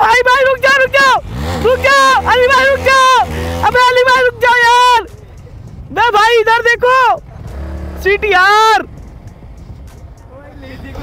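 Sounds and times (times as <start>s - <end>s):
man shouting: 0.0s - 5.2s, 5.9s - 7.2s
motorcycle engine idling: 0.0s - 11.0s.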